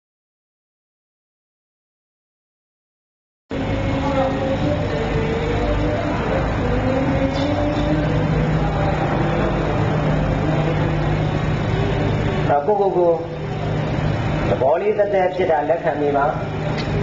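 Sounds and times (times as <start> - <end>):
low steady hum: 3.5 - 17.0.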